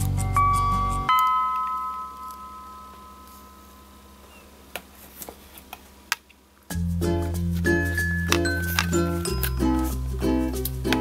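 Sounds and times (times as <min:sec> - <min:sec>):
background music: 0:00.0 - 0:03.4, 0:06.7 - 0:11.0
chime-like note ringing: 0:00.2 - 0:04.5.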